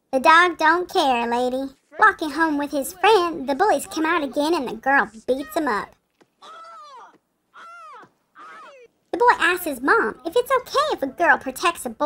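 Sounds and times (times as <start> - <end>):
crow cawing: 6.4 - 8.9.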